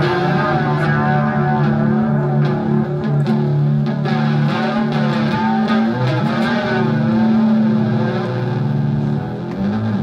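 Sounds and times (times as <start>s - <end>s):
electric guitar sustained chord: 0.0s - 10.0s.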